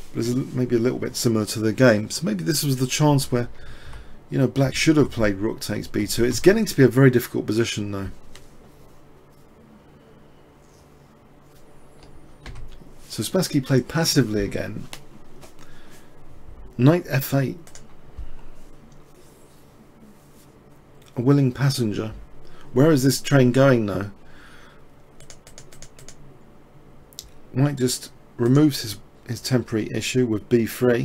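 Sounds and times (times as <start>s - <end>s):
computer keyboard clicks: 17.6s - 17.9s, 25.2s - 26.2s.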